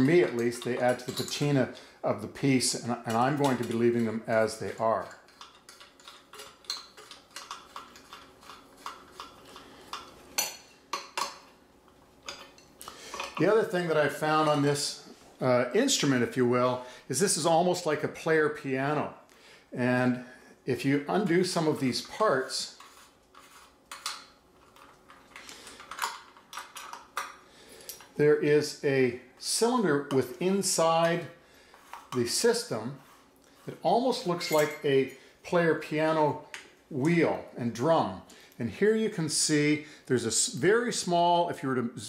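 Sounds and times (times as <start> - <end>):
metal parts clicking and scraping: 3.0 - 11.3, 23.4 - 28.2
metal tubes clinking: 34.1 - 35.3.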